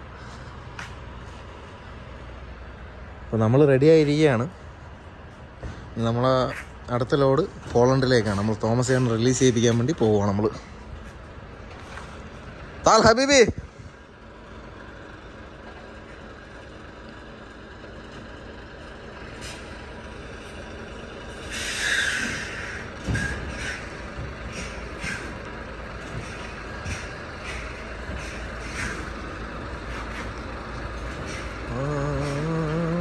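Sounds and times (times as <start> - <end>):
truck diesel engine running: 0.0 - 33.0
air brakes hissing: 19.2 - 20.0, 21.3 - 32.8.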